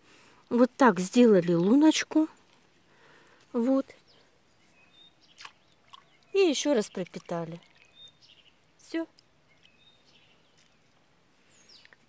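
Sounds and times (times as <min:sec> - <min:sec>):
faint bird chirps: 0:03.6 - 0:12.0.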